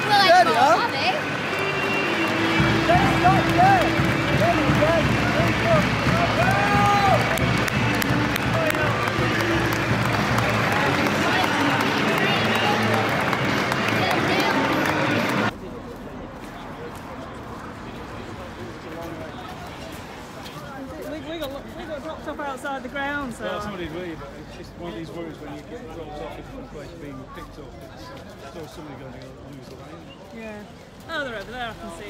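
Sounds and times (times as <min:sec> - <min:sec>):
crowd clapping: 0:00.0 - 0:15.6
outdoor street noise: 0:00.0 - 0:32.0.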